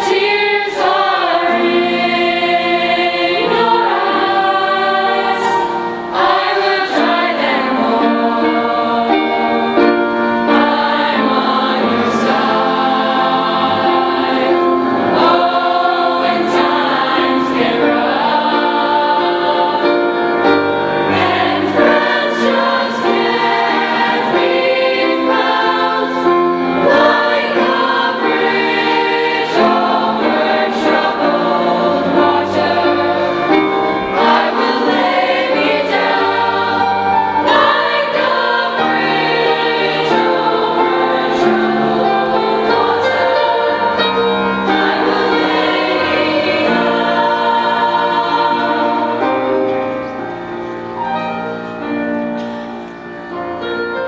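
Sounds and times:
youth choir singing: 0.0s - 51.6s.

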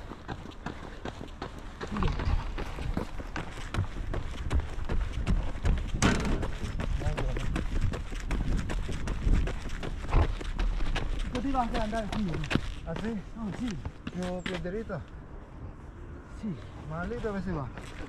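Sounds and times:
running footsteps on asphalt: 0.0s - 18.0s
wind rumble on microphone: 1.9s - 12.3s.

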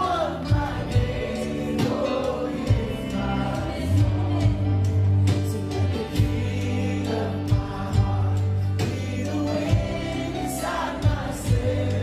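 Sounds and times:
voices singing: 0.0s - 12.0s
worship band playing: 0.0s - 12.0s.

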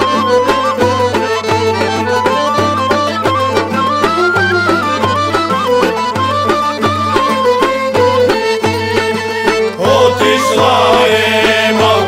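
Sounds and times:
accordion: 0.0s - 12.0s
drum beats: 0.0s - 12.0s
plucked lute: 0.0s - 12.0s
wind instrument melody: 0.0s - 12.0s.

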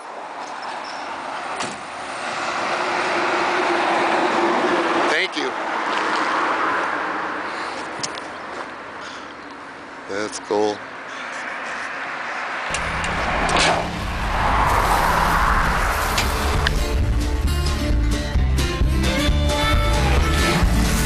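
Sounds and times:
car engine running: 12.7s - 18.0s.

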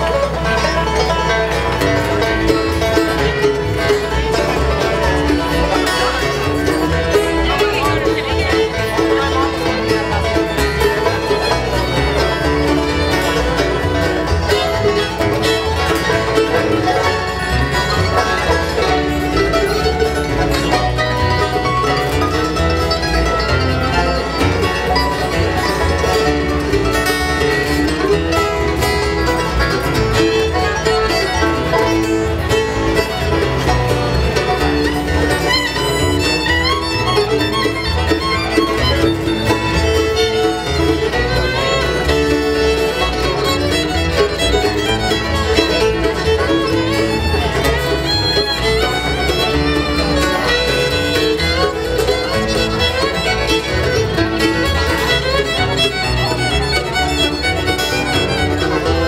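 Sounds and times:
acoustic guitar: 0.0s - 59.0s
banjo rolls: 0.0s - 59.0s
fiddle: 0.0s - 59.0s
mandolin: 0.0s - 59.0s
upright bass: 0.0s - 59.0s.

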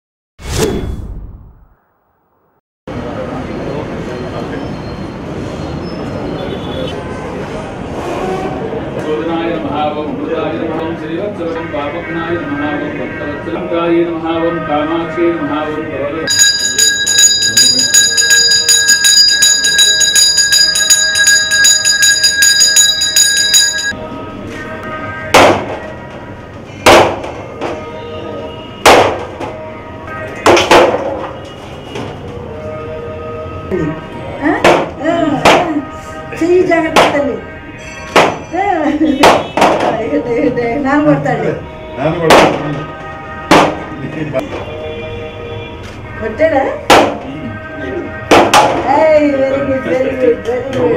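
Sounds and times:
hand bell ringing rapidly: 16.3s - 24.0s.

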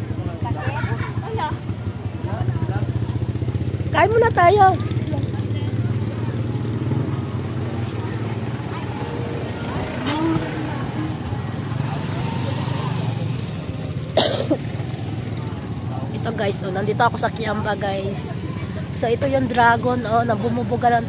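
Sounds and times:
vehicle engine humming: 0.0s - 21.0s
person coughing: 14.2s - 14.7s.

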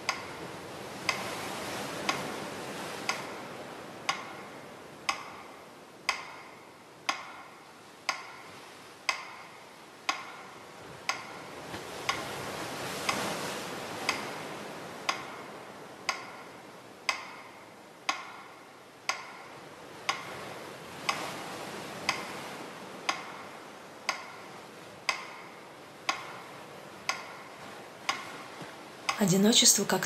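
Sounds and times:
clock ticking: 0.0s - 0.4s, 1.0s - 1.4s, 2.0s - 12.4s, 14.1s - 14.4s, 15.0s - 21.4s, 22.0s - 30.0s.

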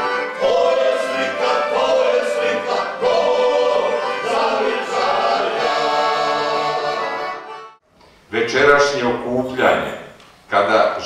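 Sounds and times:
men singing in chorus: 0.4s - 7.2s.

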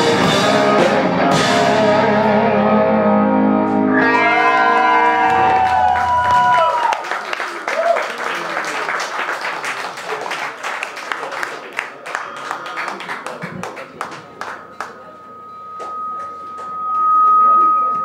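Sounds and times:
audience voices: 3.7s - 18.0s
audience applause: 4.0s - 15.1s
sustained electric guitar note: 14.4s - 18.0s.

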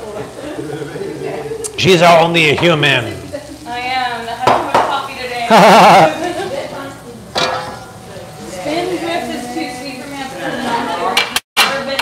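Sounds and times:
kitchen ware clack: 7.3s - 8.1s.

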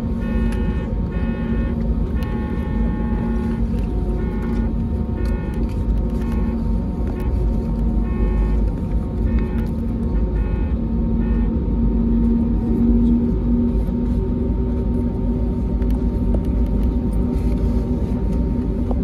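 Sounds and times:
aircraft engines idling rumble: 0.0s - 19.0s
low hum: 0.0s - 19.0s.

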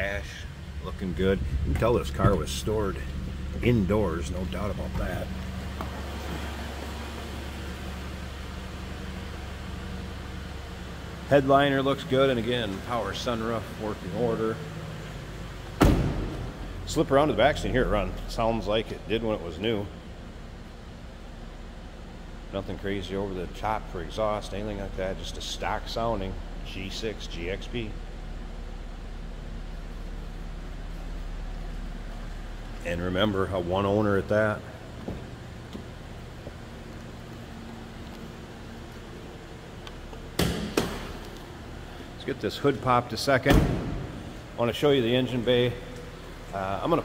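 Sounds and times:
car engine idling: 0.0s - 47.0s
car door slamming: 15.8s - 16.6s, 43.4s - 44.3s.

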